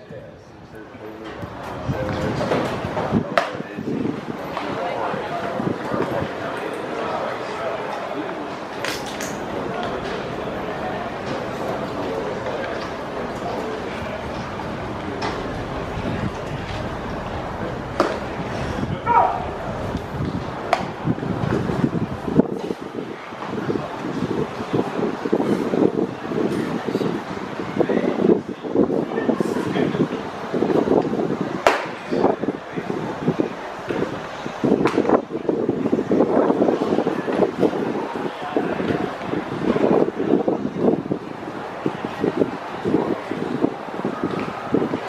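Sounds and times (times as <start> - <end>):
background voices chattering: 0.0 - 45.0.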